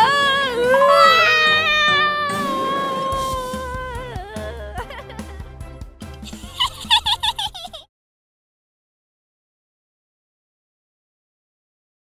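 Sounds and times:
playful cartoon music: 0.0s - 7.9s.

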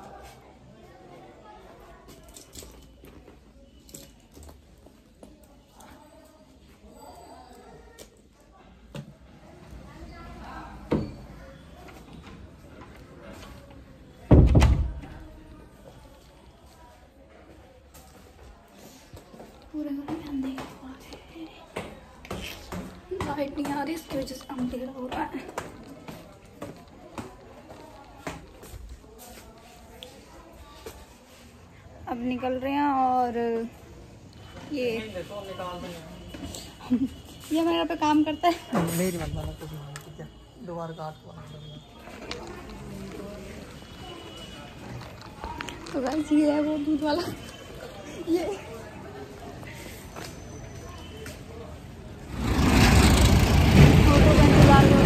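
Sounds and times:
road traffic: 14.9s - 55.0s.

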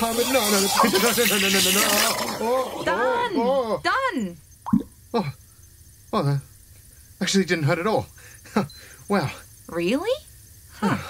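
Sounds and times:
wet comic pops: 4.6s - 4.9s.

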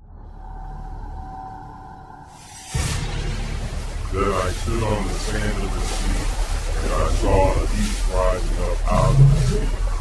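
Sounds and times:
steady low rumble: 0.0s - 10.0s
beast-like roaring: 8.6s - 10.0s.

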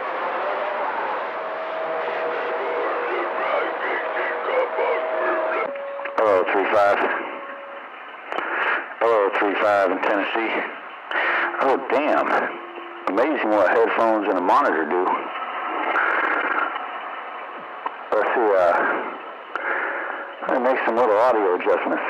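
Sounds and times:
radio static hiss: 0.0s - 22.0s
voices over radio receiver: 2.2s - 10.8s, 11.6s - 16.8s, 18.1s - 19.1s, 20.4s - 22.0s.

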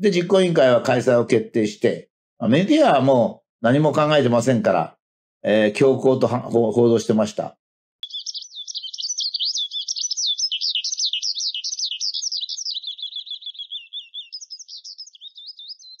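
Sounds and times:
songbird warbling: 8.0s - 16.0s.

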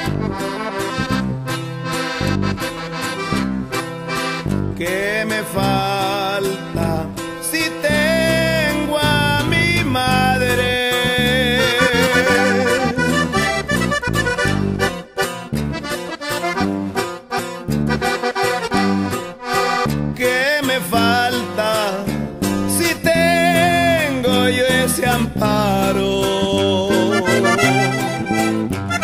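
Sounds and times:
button accordion melody: 0.0s - 29.0s
strummed guitar and bass rhythm: 0.0s - 29.0s.

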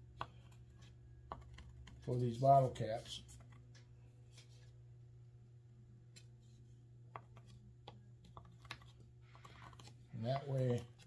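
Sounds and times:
low steady hum: 0.0s - 11.0s
pencil tapping on wood: 0.1s - 2.0s, 7.1s - 10.8s.

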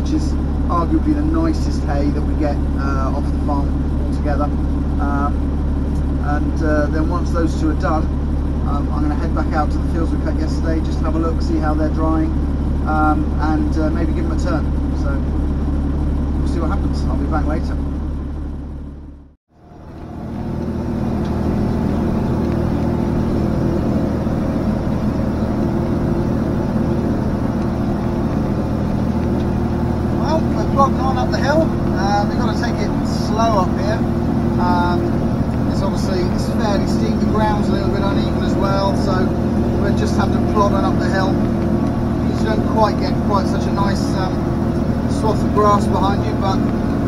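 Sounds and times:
tractor engine under load: 0.0s - 47.0s.

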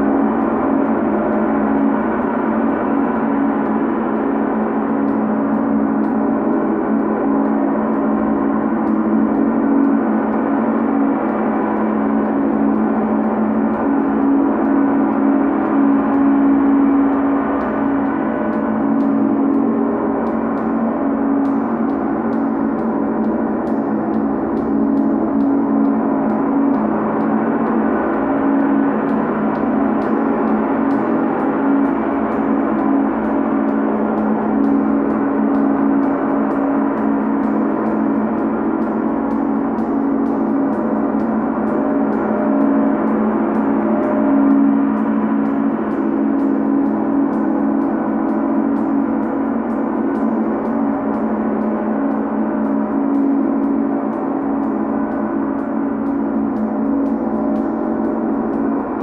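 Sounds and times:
large gong played with mallet: 0.0s - 59.0s.

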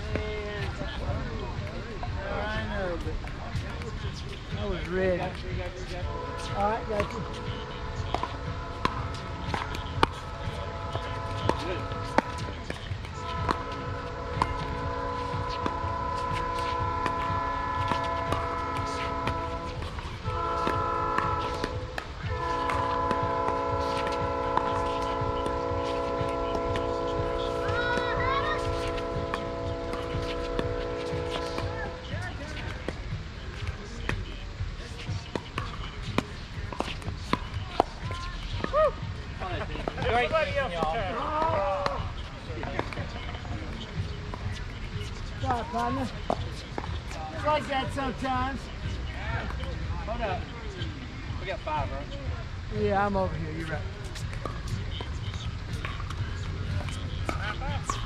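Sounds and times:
train horn blasts: 6.0s - 32.1s
paddles hitting ball: 6.4s - 47.2s.

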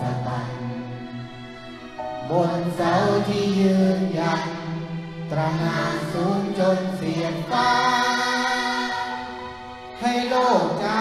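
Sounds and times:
children's choir singing: 0.0s - 1.4s, 2.1s - 11.0s
orchestra playing: 0.0s - 11.0s
man singing into a microphone: 2.2s - 4.7s, 5.3s - 7.6s, 10.0s - 11.0s.

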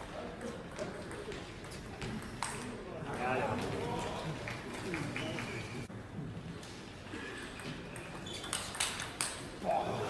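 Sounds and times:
table tennis ball clicking: 8.4s - 9.4s.

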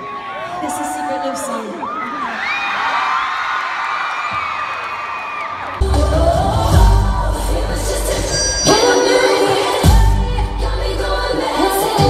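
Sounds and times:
crowd cheering and screaming: 0.0s - 10.0s
live pop music with heavy bass: 5.8s - 12.0s.

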